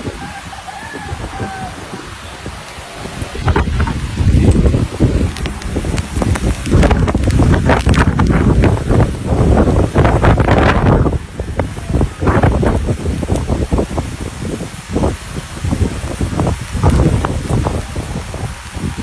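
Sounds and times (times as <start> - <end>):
strong wind buffeting microphone: 0.0 - 19.0.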